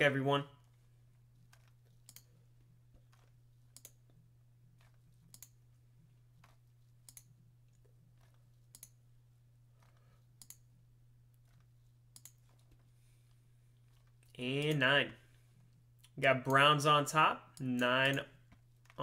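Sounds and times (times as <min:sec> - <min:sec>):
low hum: 0:00.0 - 0:19.0
computer mouse clicks: 0:01.4 - 0:02.4, 0:03.0 - 0:04.1, 0:04.8 - 0:05.6, 0:06.4 - 0:09.0, 0:09.8 - 0:10.7, 0:11.5 - 0:12.8.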